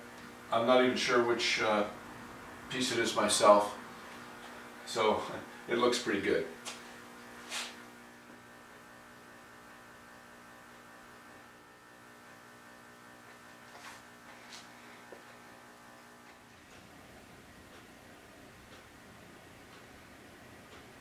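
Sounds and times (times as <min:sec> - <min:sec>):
faint electrical hum: 0:00.0 - 0:21.0.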